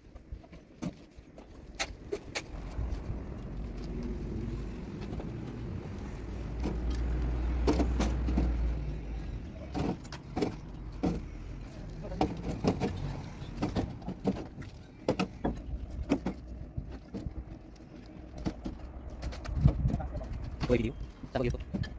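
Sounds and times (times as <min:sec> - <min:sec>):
low rumble: 0:01.9 - 0:12.2.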